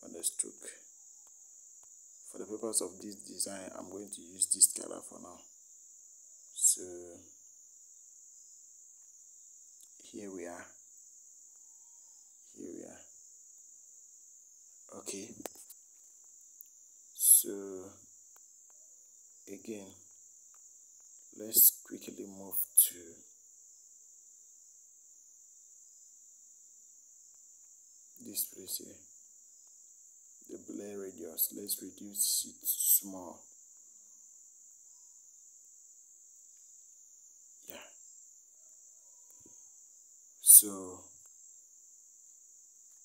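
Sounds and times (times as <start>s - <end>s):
light hiss: 0.0s - 24.2s, 24.8s - 35.1s, 35.9s - 38.3s, 39.1s - 43.0s
faint high-pitched whine: 0.0s - 43.0s.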